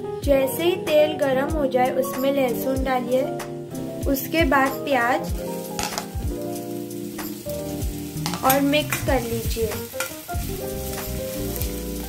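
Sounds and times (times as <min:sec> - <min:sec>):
background music: 0:00.0 - 0:12.0
onions sizzling in hot oil: 0:03.7 - 0:12.0.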